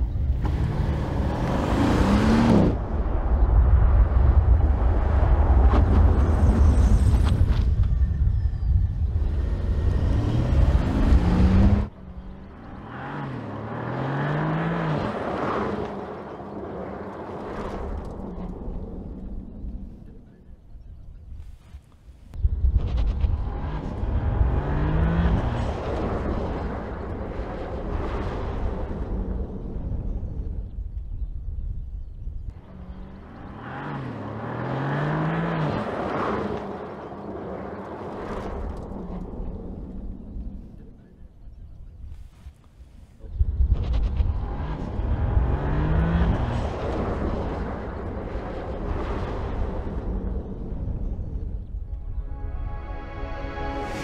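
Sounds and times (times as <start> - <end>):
tyre and road noise: 0.0 - 54.0
distant car accelerating: 0.2 - 7.1, 9.2 - 20.2, 23.1 - 30.7, 32.5 - 41.0, 43.7 - 52.3
car engine passing: 0.3 - 7.1, 9.2 - 19.4, 32.6 - 40.9.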